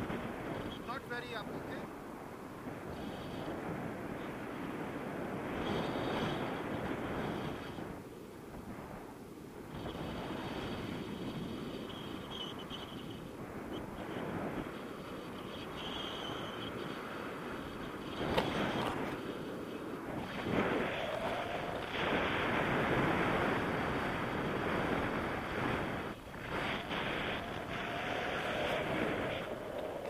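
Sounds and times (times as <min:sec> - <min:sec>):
wind rushing on microphone: 0:00.0 - 0:30.0.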